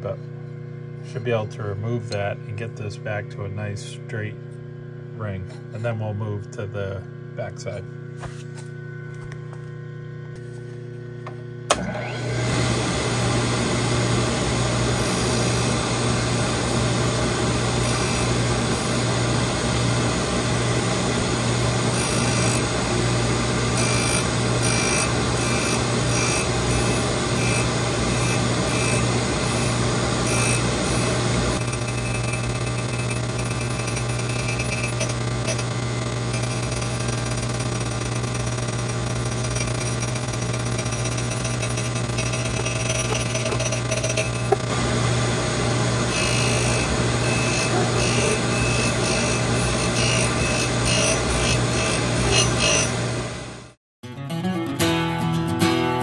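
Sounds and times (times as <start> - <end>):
grinder motor hum: 0.0 - 53.8
wheel grinding steel: 14.9 - 20.1, 23.7 - 44.8, 45.8 - 53.8.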